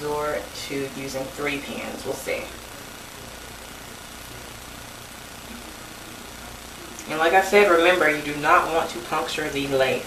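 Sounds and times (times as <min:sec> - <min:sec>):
room tone hiss and hum: 0:00.0 - 0:10.0.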